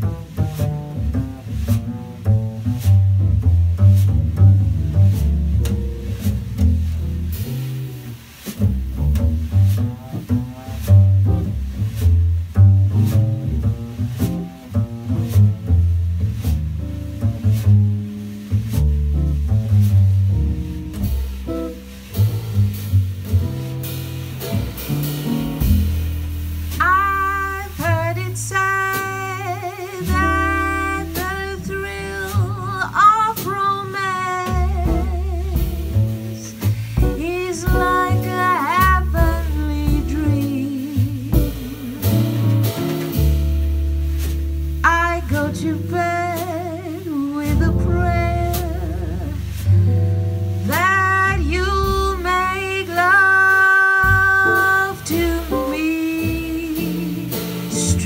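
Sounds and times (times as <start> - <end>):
plucked double bass solo: 0.0 - 58.0.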